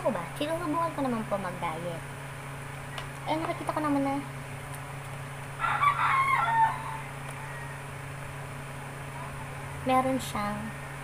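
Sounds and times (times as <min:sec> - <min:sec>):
rooster crowing: 0:05.6 - 0:08.1.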